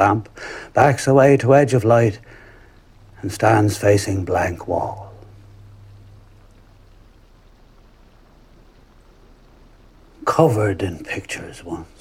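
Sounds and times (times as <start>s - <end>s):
faint background hiss: 0.0s - 12.0s
low hum: 2.0s - 10.2s.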